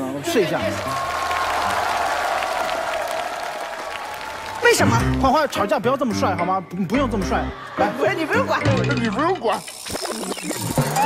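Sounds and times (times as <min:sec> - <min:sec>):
studio audience applauding: 0:00.3 - 0:05.8.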